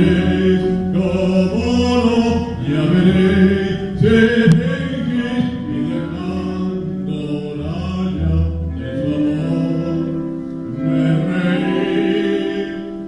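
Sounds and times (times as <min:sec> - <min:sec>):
man singing solo: 0:00.0 - 0:13.0.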